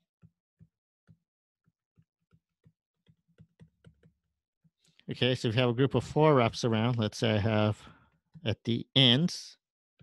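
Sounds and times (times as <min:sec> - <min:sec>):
stylus tapping on tablet screen: 0:02.0 - 0:04.3.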